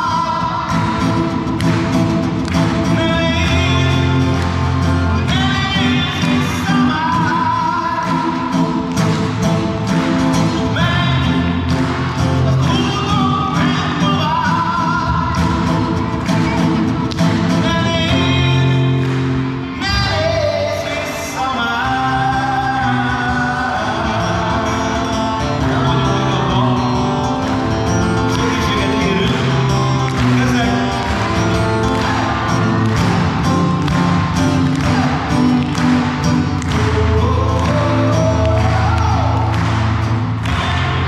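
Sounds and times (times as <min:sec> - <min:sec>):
person singing with vibrato: 0:00.0 - 0:16.0, 0:17.3 - 0:41.0
guitar accompaniment: 0:00.0 - 0:41.0.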